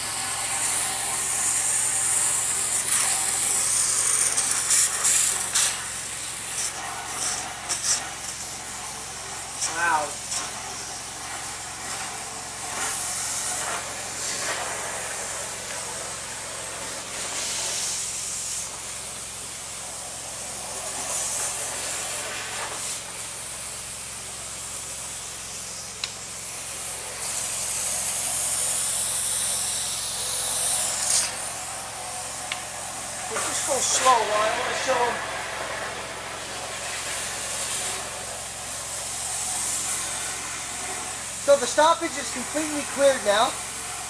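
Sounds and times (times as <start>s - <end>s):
high-pressure water jet hissing: 0.0s - 44.0s.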